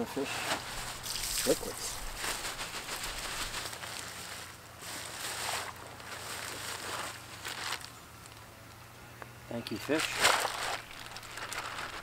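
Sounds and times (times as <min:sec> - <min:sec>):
plastic bag crinkling: 0:00.6 - 0:08.4, 0:09.9 - 0:12.0.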